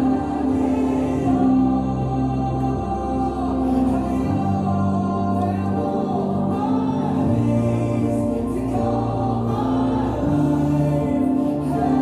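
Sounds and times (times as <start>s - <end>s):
voices singing worship song: 0.0s - 12.0s.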